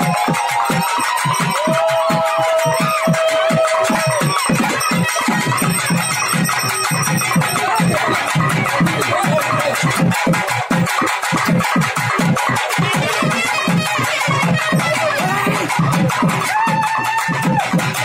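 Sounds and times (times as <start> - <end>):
loud music with fast drums: 0.0 - 18.0
held high note: 0.8 - 10.1.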